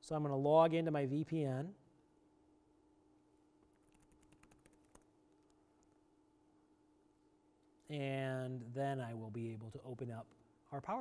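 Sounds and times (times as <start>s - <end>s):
faint steady hum: 0.0s - 11.0s
computer keyboard typing: 3.7s - 5.6s.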